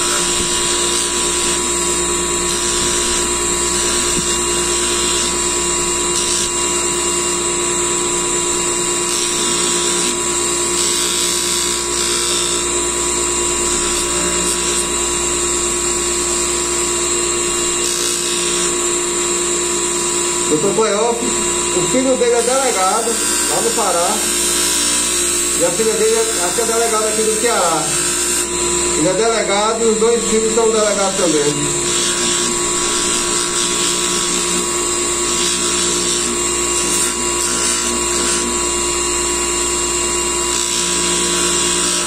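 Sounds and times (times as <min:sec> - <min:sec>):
polishing motor whining: 0:00.0 - 0:42.0.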